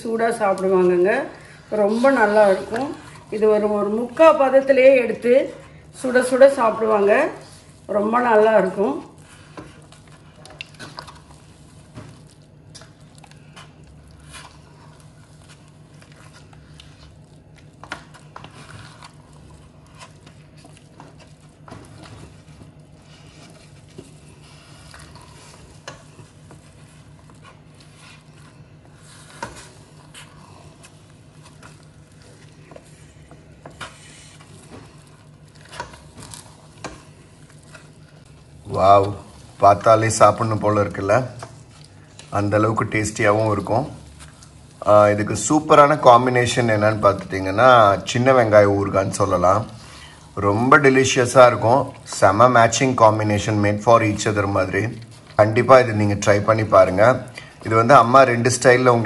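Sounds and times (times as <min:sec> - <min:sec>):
low steady hum: 0:00.0 - 0:59.0
spatula scraping a metal pot: 0:23.0 - 0:40.4.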